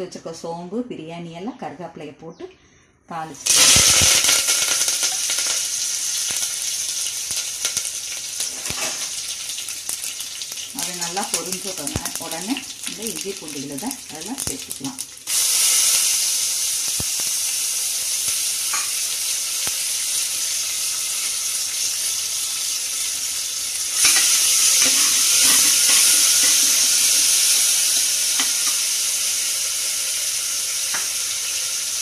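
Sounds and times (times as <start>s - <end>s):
paste sizzling in hot oil: 3.4s - 32.0s.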